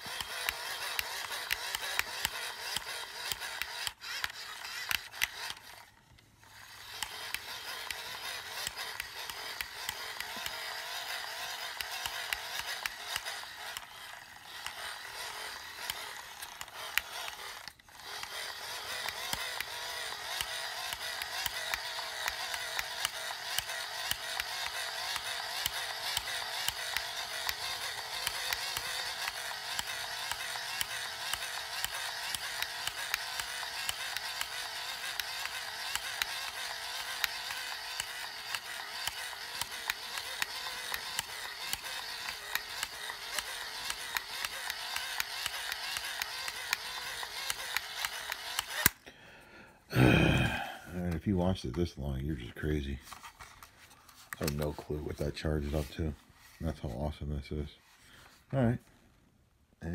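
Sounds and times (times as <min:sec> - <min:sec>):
hand-crank dynamo whirring: 0:00.0 - 0:49.2.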